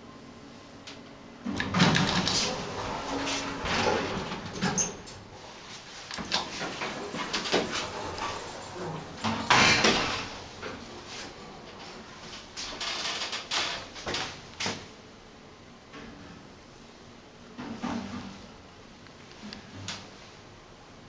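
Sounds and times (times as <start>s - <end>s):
elevator doors rumbling and clunking: 1.4s - 14.7s
elevator knocks and running noise: 1.5s - 14.8s.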